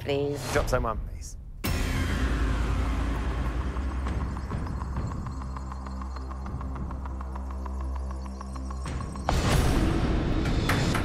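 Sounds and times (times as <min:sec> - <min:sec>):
low throbbing hum: 0:01.6 - 0:10.5.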